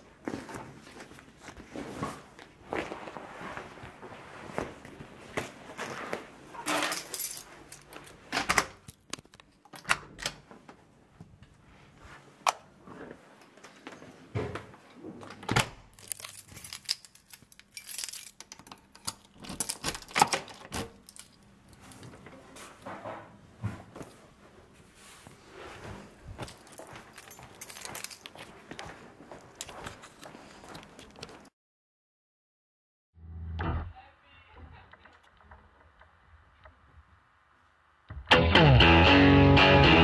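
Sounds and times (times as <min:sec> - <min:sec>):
keys jangling: 0:06.7 - 0:08.2, 0:16.0 - 0:22.0, 0:26.4 - 0:28.5.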